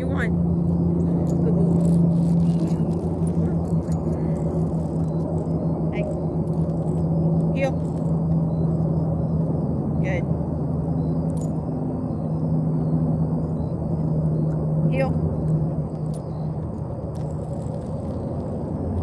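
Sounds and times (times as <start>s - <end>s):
low machine hum: 0.0s - 19.0s.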